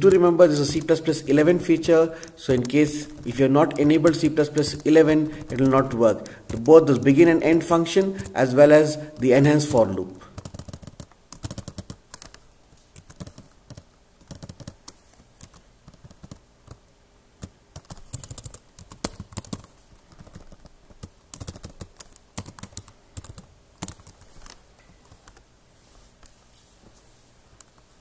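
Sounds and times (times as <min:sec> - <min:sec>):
computer keyboard typing: 0:00.0 - 0:25.4.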